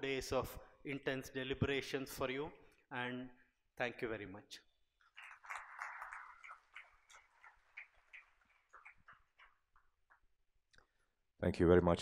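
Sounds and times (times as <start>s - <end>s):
faint audience applause: 5.1s - 9.8s.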